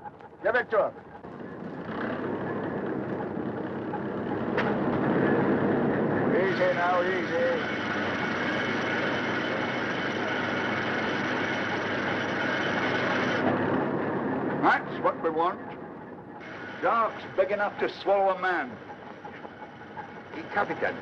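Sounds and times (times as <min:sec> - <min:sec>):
boat engine running: 0:00.0 - 0:21.0
film soundtrack hiss: 0:03.0 - 0:21.0.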